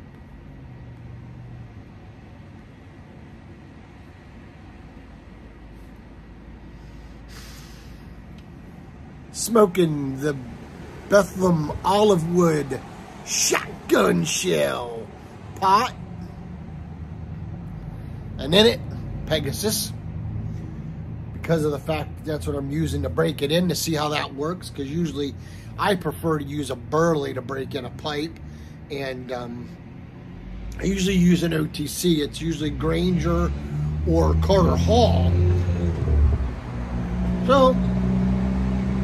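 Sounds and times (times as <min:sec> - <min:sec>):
distant vehicle engine hum: 0:00.0 - 0:39.0
town background noise: 0:00.0 - 0:39.0.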